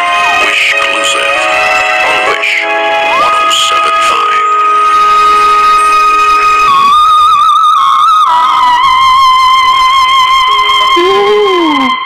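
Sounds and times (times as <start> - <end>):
low sustained accompaniment note: 0.0 - 12.0
woman singing high note: 10.8 - 12.0.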